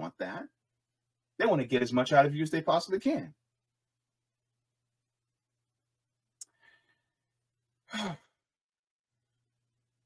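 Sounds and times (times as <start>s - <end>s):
man sighing: 7.9s - 8.4s.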